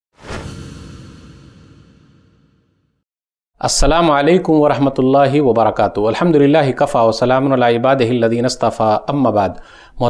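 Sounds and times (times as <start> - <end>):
whoosh: 0.1 - 3.0
low rumble: 0.2 - 2.8.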